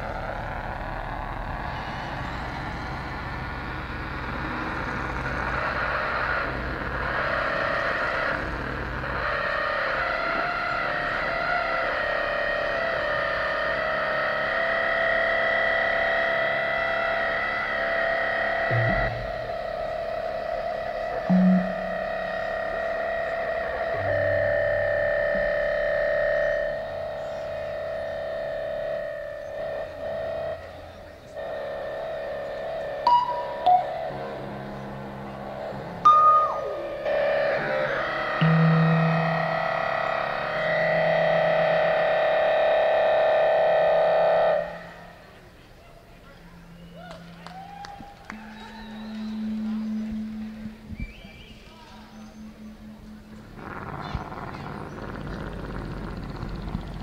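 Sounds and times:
synthesizer drones: 0:00.0 - 0:57.0
short bright electronic blips: 0:21.3 - 0:22.3.

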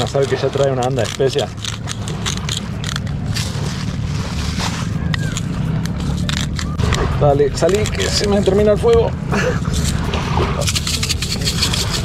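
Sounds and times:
low rumble: 0:01.6 - 0:11.2
salt rattling in glass shaker: 0:10.6 - 0:12.0.

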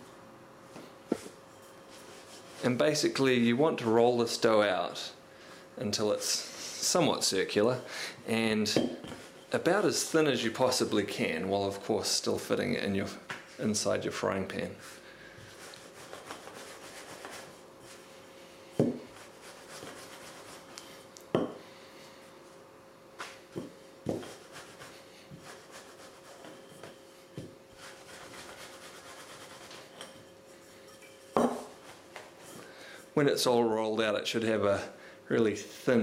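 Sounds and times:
rolling pin rubbing over dough: 0:15.4 - 0:18.1, 0:19.0 - 0:20.8, 0:24.1 - 0:30.7
rolling pin knocking on table: 0:18.8 - 0:19.1.

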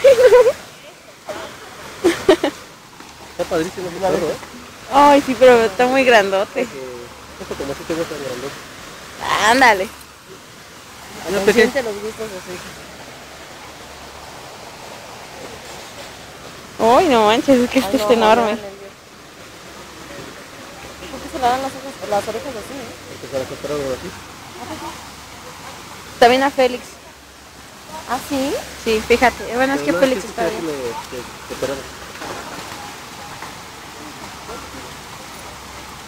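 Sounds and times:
steady background hiss: 0:00.0 - 0:36.0
waterfall spilling into pond: 0:00.0 - 0:36.0.

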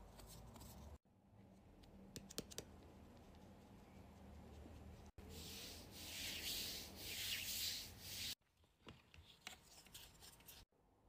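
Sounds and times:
hand rubbing powder on skin: 0:03.1 - 0:08.4.

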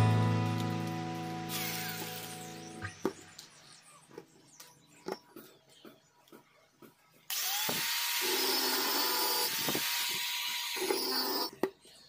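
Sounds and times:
angle grinder cutting steel: 0:01.5 - 0:02.7, 0:07.3 - 0:11.5.

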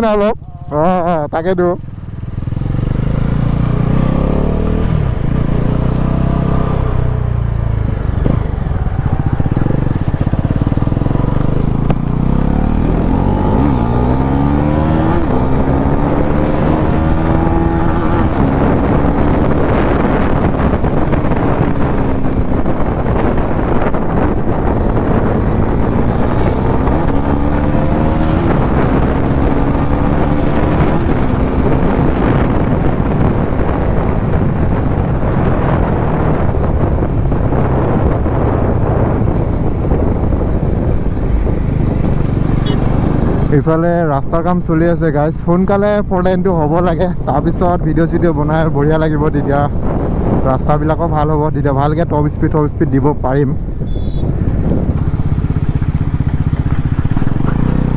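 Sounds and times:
motorcycle engine revving: 0:00.0 - 0:57.9
wind on microphone: 0:02.2 - 0:57.9.

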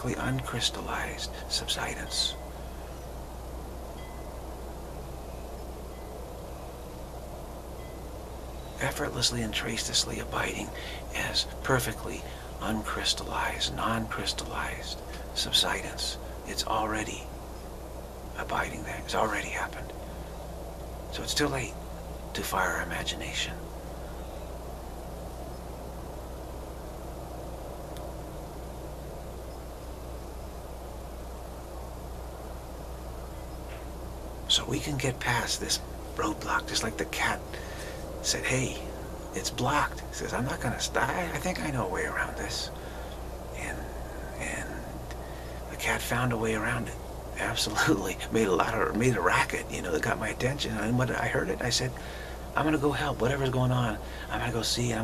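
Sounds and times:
constant low hum: 0:00.0 - 0:55.0
steady background hiss: 0:00.0 - 0:55.0.

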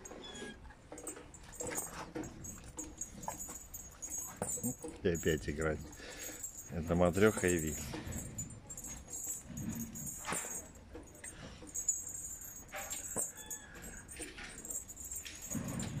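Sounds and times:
faint metallic jingling: 0:00.0 - 0:16.0.

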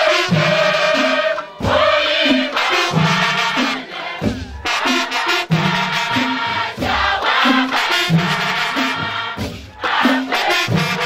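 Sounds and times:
women singing a chant: 0:00.0 - 0:11.0.

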